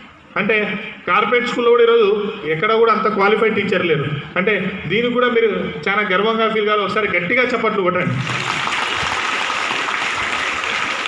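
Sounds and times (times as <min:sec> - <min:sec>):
audience applause: 0:08.2 - 0:11.0.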